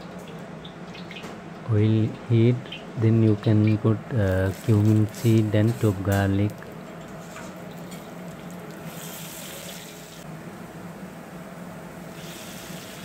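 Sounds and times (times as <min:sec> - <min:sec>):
garlic sizzling in hot oil: 0:08.1 - 0:10.2, 0:12.1 - 0:13.0.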